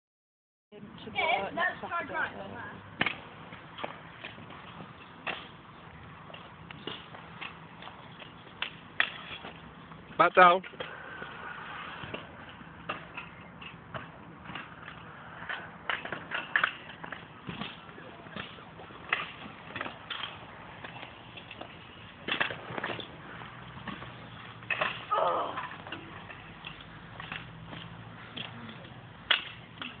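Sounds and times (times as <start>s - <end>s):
scooter wheels clacking on concrete: 3.0s - 9.6s, 10.6s - 30.0s.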